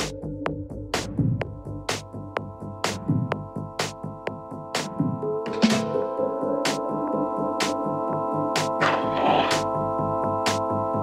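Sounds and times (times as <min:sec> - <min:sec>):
minimal techno music: 0:00.0 - 0:11.0.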